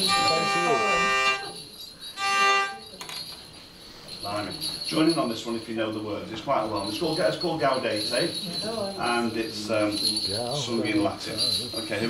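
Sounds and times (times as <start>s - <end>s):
hurdy-gurdy drone notes: 0.0s - 1.6s, 2.2s - 2.9s.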